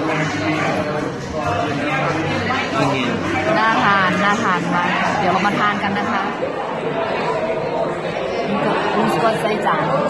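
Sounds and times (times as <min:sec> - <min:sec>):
diners chattering: 0:00.0 - 0:10.0
woman talking: 0:03.5 - 0:06.4.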